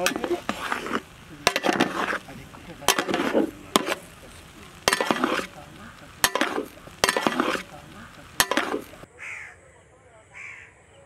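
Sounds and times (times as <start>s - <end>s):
rice rustling: 0.0s - 9.1s
metal spatula knocking on pot: 6.2s - 7.7s, 8.4s - 8.8s.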